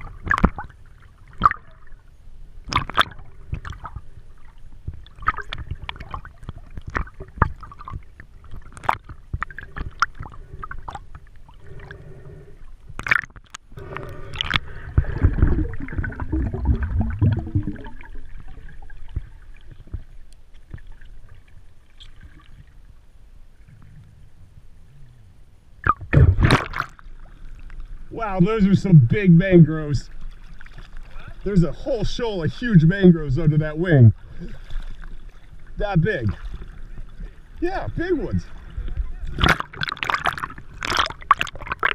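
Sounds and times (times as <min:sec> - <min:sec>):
underwater clicks: 0:00.0 - 0:00.7, 0:01.3 - 0:01.8, 0:02.6 - 0:04.0, 0:04.8 - 0:11.2, 0:12.8 - 0:18.1, 0:25.8 - 0:27.8, 0:39.2 - 0:41.9
water splashing: 0:00.0 - 0:12.2, 0:12.8 - 0:22.9, 0:25.8 - 0:41.9
underwater water movement: 0:00.0 - 0:41.9.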